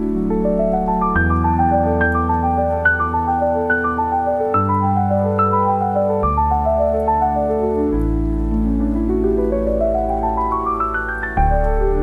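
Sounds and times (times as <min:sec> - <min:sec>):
piano arpeggio: 0:00.0 - 0:12.0
rain: 0:00.0 - 0:12.0.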